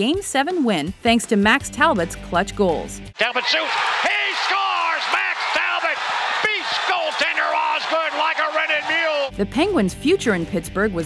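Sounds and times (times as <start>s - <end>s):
announcer shouting: 3.2s - 9.3s
arena crowd noise: 3.2s - 9.3s.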